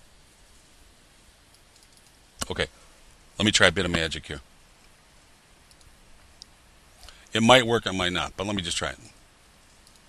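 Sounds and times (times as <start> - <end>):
faint computer mouse clicks: 1.5 - 2.5, 5.7 - 7.2, 9.6 - 10.0.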